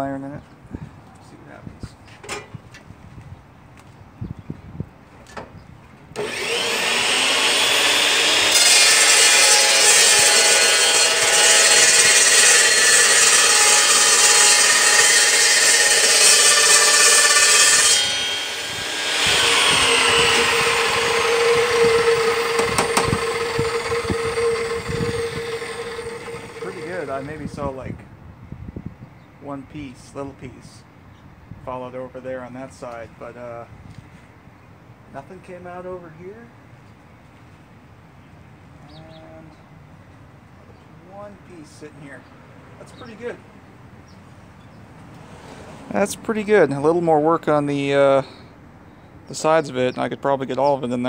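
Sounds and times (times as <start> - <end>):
saw blade grinding screech: 6.2 - 27.6
saw motor whine: 6.2 - 27.7.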